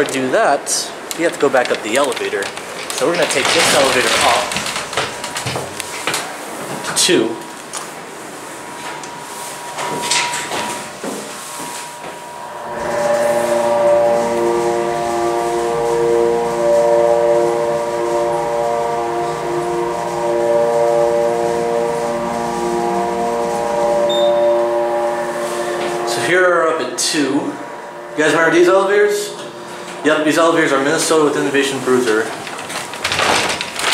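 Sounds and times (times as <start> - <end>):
elevator machinery humming: 0.0 - 33.9.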